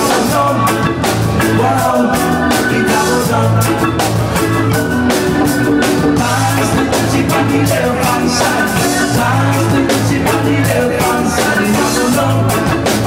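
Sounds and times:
drums: 0.0s - 13.0s
live reggae band: 0.0s - 13.0s
person singing: 0.0s - 13.0s
pulsing bass line: 0.0s - 13.0s.

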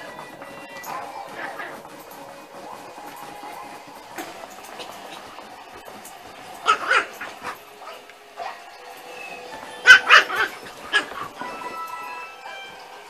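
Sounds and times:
dog barking: 0.0s - 2.1s, 6.6s - 11.8s
faint background music: 0.0s - 13.0s.

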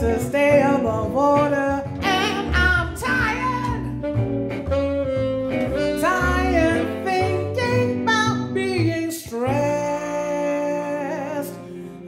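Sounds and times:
woman singing: 0.0s - 4.0s, 5.9s - 11.8s
double bass: 0.0s - 12.0s
saxophone playing: 0.6s - 8.8s, 9.7s - 12.0s.

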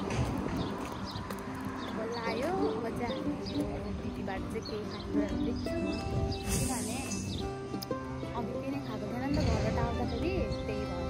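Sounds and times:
footsteps on asphalt: 0.0s - 6.4s.

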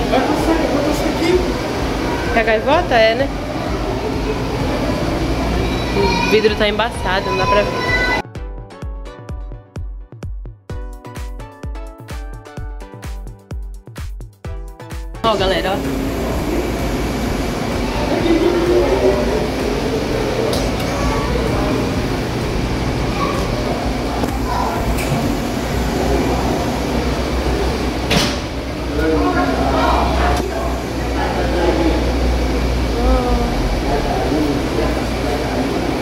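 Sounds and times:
indistinct voices talking: 0.0s - 8.2s, 15.2s - 36.0s
low machinery hum: 0.0s - 8.2s, 15.2s - 36.0s.

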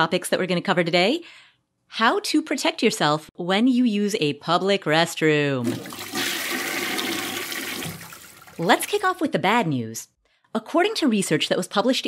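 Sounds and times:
toilet flushing: 5.6s - 9.1s.

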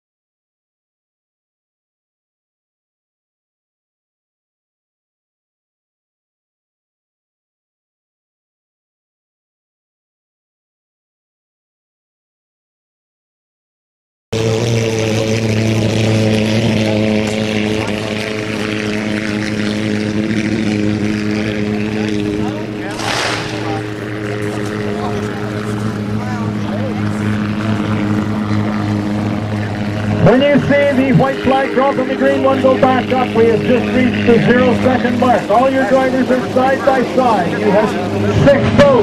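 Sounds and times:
racing boat engines droning: 14.4s - 39.0s
rush of noise: 22.8s - 39.0s
commentator speaking: 30.2s - 39.0s.

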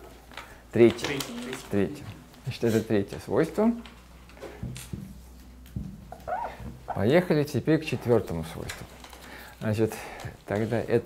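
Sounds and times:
marker squeaking on whiteboard: 6.1s - 7.2s.

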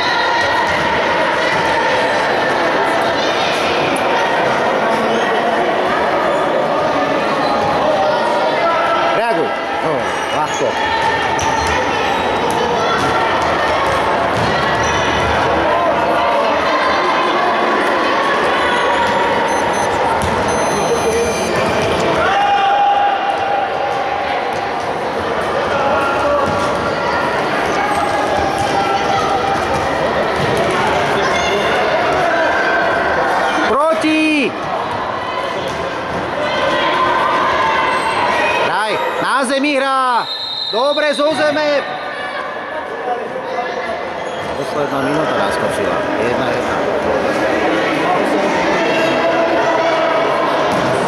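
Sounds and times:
people shouting in echoing hall: 0.0s - 20.9s, 21.5s - 51.0s.

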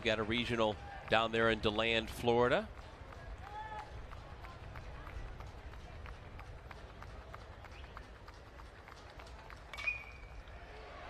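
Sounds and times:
faint crowd ambience: 0.0s - 11.0s.

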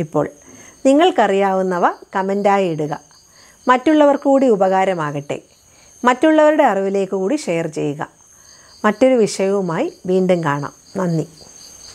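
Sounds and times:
woman speaking: 0.0s - 8.2s, 8.8s - 11.4s
crickets chirring: 0.0s - 11.9s.

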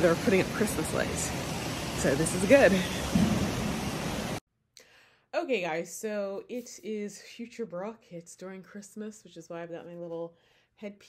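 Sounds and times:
woman's voice: 0.0s - 1.4s, 2.0s - 3.1s, 5.4s - 11.0s.

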